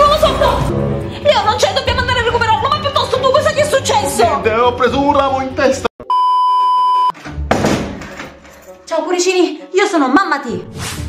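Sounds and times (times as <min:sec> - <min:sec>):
electronic bleep: 0:06.0 - 0:07.1.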